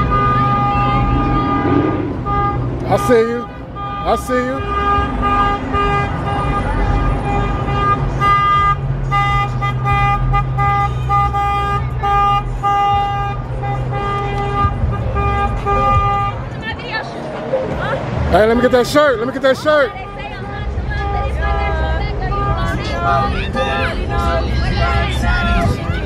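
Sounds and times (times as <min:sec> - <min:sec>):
car horn toots: 0:00.0 - 0:16.7, 0:18.4 - 0:26.0
low rumble of car engines: 0:00.0 - 0:26.0.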